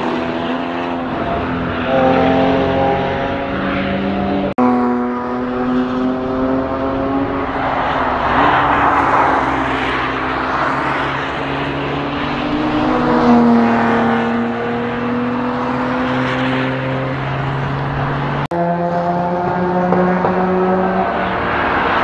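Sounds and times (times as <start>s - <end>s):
race car engines at high revs: 0.0s - 22.0s.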